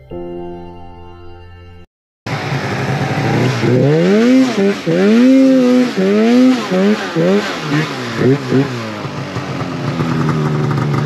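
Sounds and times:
snowmobile engine revving: 2.3s - 11.0s.

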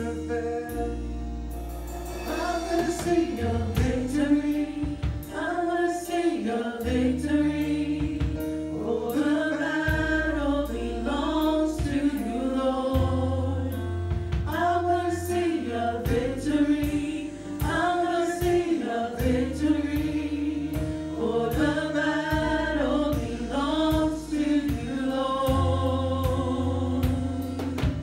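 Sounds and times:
drum and cymbal hits: 0.0s - 28.0s
electric bass long low notes: 0.0s - 28.0s
group of singers: 0.0s - 28.0s
keyboard: 0.0s - 28.0s.

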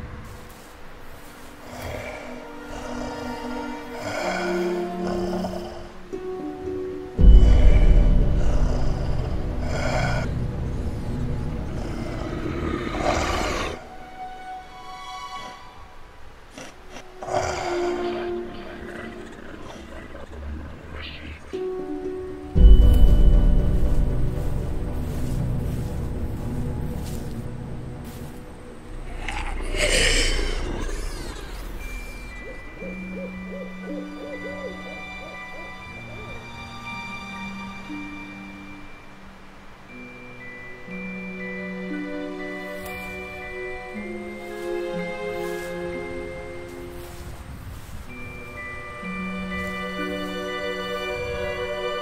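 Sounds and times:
held drone notes: 0.0s - 16.2s, 16.8s - 52.0s
short hoot-like calls: 29.4s - 36.8s.

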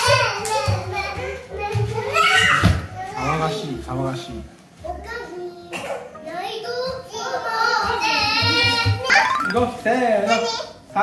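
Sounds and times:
background music: 8.0s - 10.1s.

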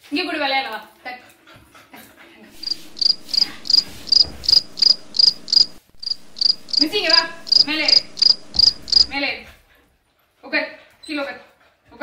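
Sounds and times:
cricket chirping: 2.6s - 9.1s.

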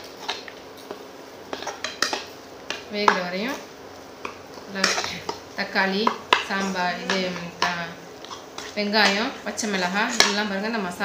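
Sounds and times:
metal spoon scraping frying pan: 6.3s - 10.5s.

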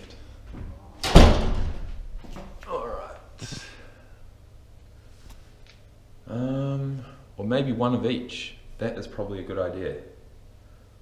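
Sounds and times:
heavy thud: 1.0s - 2.3s.

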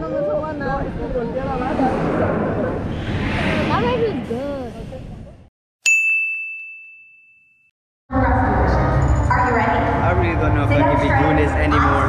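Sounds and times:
bright bell-like ding: 5.8s - 7.7s.

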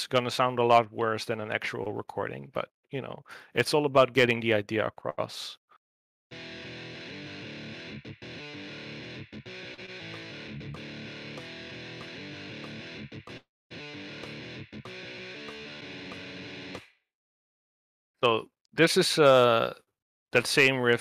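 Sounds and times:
distorted electric guitar riff: 6.3s - 16.8s.

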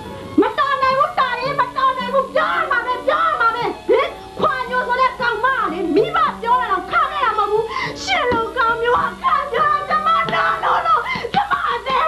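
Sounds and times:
background music with low notes: 0.0s - 12.0s
woman wailing and crying: 9.0s - 12.0s.

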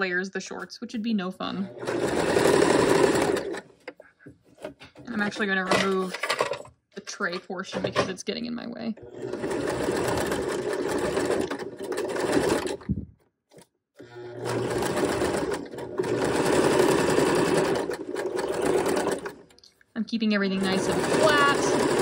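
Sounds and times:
sewing machine stitching: 1.6s - 4.0s, 9.0s - 19.6s, 20.5s - 22.0s.

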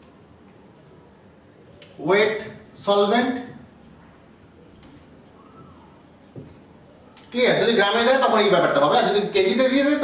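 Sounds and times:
marker writing on whiteboard: 1.7s - 6.8s.

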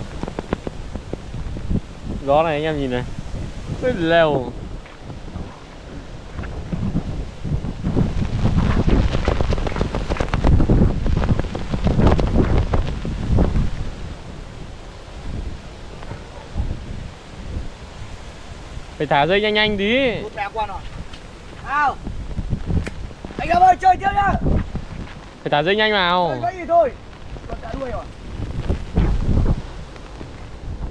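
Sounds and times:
wind gusting over microphone: 0.0s - 30.9s.

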